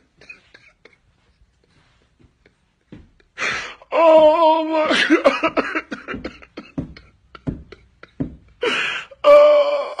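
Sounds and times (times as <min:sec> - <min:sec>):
man sobbing and wailing: 0:03.2 - 0:10.0.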